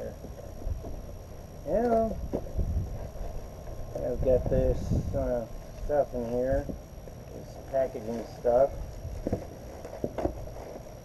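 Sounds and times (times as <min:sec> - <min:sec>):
cardboard and plastic packaging rustling: 0:07.4 - 0:11.0.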